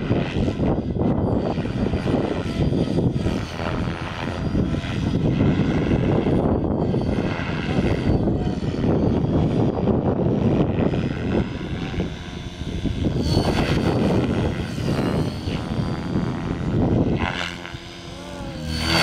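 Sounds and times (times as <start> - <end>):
model helicopter rotor blades whirring: 0.0 - 19.0.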